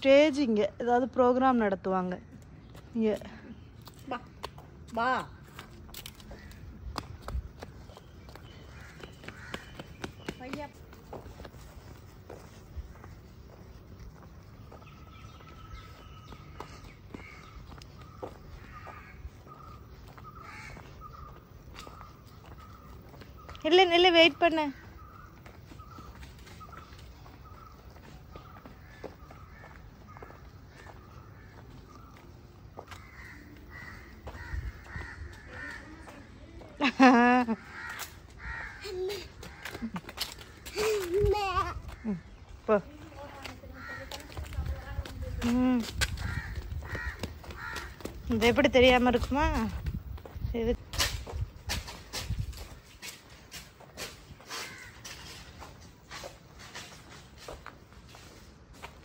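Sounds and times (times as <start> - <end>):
footsteps on paved path: 0.0 - 59.0
crows cawing: 8.6 - 10.0, 15.8 - 22.9, 28.3 - 32.2, 32.8 - 36.4, 37.5 - 41.0, 43.6 - 44.5, 46.2 - 48.3, 54.5 - 55.3
bird calling: 14.6 - 36.4.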